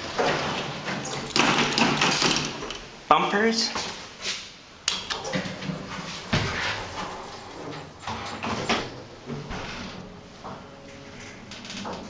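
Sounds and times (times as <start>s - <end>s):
elevator doors sliding shut: 0.0s - 2.9s, 5.0s - 12.0s
elevator car clunks: 5.0s - 12.0s.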